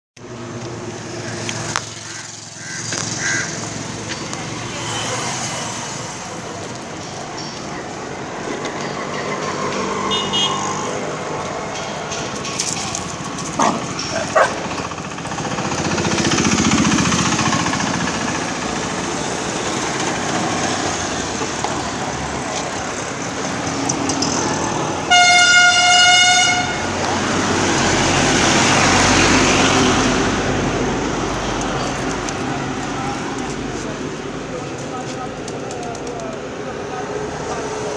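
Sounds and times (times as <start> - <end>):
street traffic: 0.2 - 37.9
vehicle horn toot: 10.0 - 10.8, 25.1 - 26.9.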